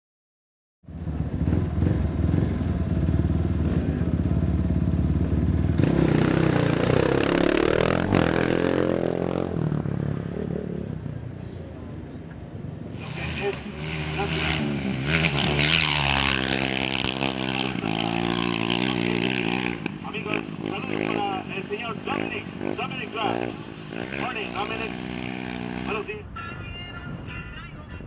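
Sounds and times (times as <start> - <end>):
motorcycle engine running: 0.9 - 26.2.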